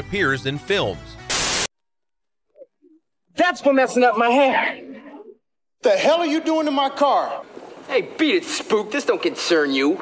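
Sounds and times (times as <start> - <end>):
tv static hiss: 1.3 - 1.7.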